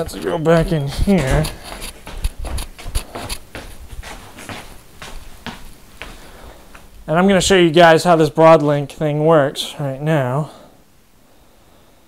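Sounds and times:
footsteps on hardwood floor: 0:00.0 - 0:06.9.

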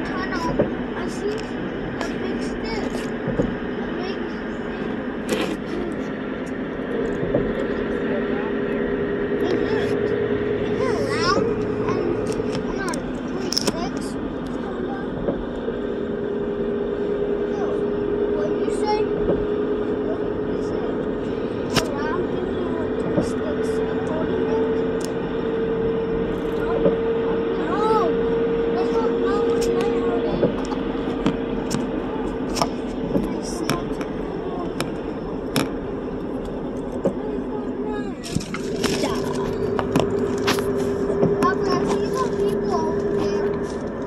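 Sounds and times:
boat engine droning: 0:00.0 - 0:44.0
faint indistinct voices: 0:00.0 - 0:44.0
rush of noise: 0:00.0 - 0:44.0
wind: 0:00.0 - 0:44.0.

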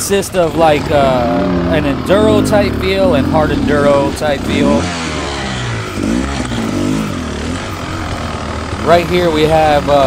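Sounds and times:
dirt bike engine revving: 0:00.3 - 0:10.0.

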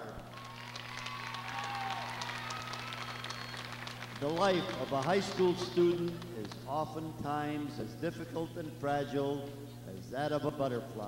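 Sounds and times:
steady low hum: 0:00.0 - 0:11.0
audience applause: 0:00.3 - 0:06.6.

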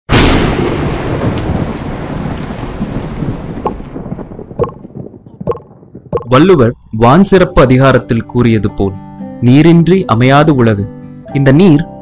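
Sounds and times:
heavy rain: 0:00.1 - 0:06.1
thunder rumble: 0:00.1 - 0:07.3.

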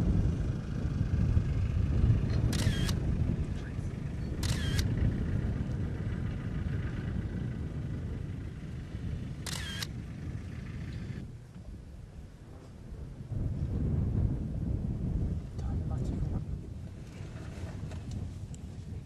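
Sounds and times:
steady low rumble: 0:00.0 - 0:19.0
camera shutter clicks: 0:02.4 - 0:03.0, 0:04.4 - 0:04.9, 0:09.5 - 0:09.9.

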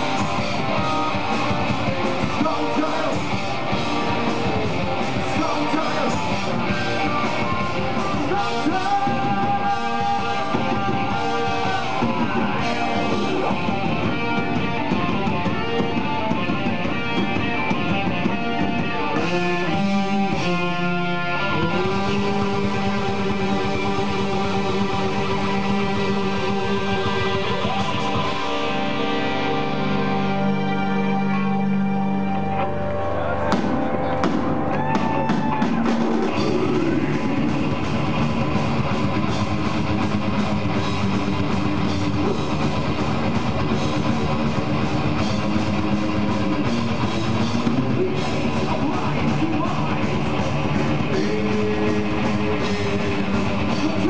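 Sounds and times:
heavy metal band playing live: 0:00.0 - 0:54.0
held keyboard and guitar notes: 0:00.0 - 0:54.0.

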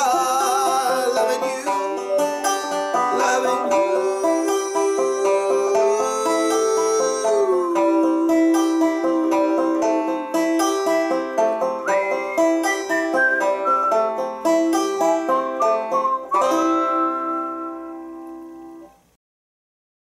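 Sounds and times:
banjo chords strummed: 0:00.0 - 0:19.0.

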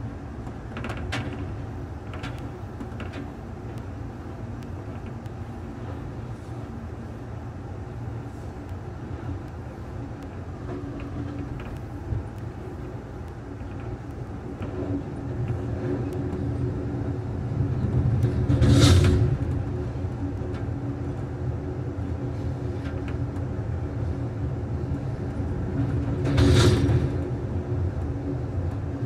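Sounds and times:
train wheels rumbling on rail: 0:00.0 - 0:29.0.

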